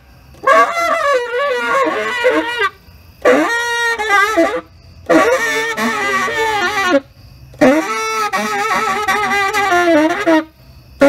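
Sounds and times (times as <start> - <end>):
tenor saxophone improvising: 0.3 - 10.6.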